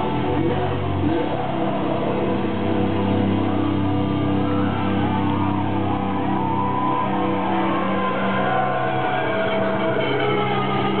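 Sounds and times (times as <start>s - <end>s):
live rock band with electric guitars: 0.0s - 11.0s.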